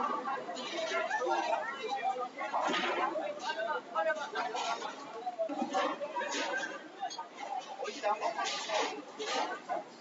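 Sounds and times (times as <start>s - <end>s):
indistinct chatter of people: 0.0s - 10.0s.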